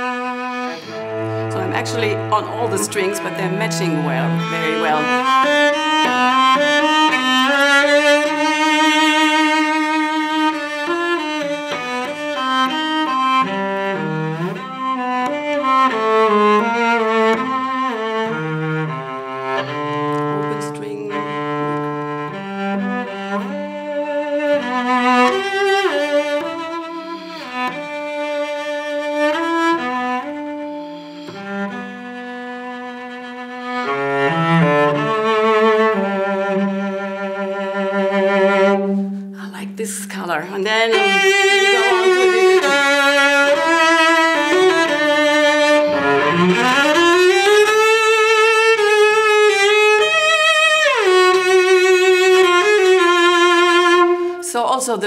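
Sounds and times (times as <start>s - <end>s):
solo cello melody: 0.0s - 55.0s.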